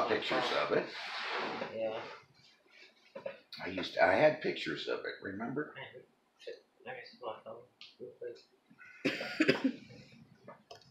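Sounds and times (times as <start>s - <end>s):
man coughing: 8.9s - 9.8s.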